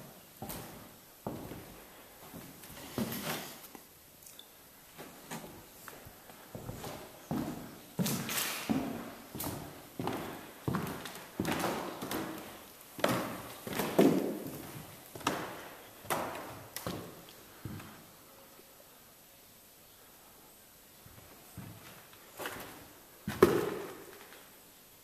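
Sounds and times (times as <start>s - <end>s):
footsteps on hard floor: 0.0s - 3.8s, 5.0s - 18.0s, 21.1s - 24.2s.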